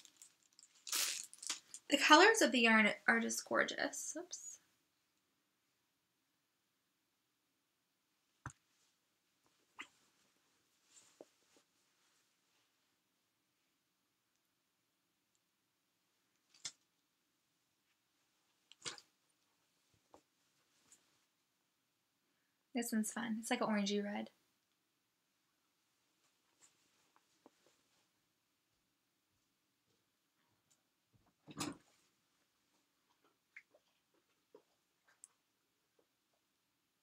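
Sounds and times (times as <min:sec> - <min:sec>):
paper crinkling rustle: 0:00.0 - 0:01.9.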